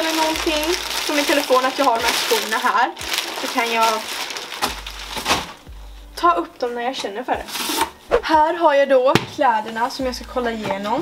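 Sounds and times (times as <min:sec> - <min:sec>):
plastic bag rustling: 0:00.0 - 0:05.7.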